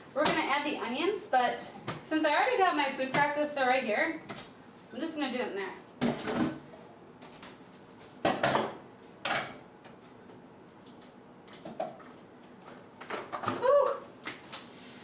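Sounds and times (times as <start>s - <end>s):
kitchen items knocking on countertop: 8.2s - 9.6s.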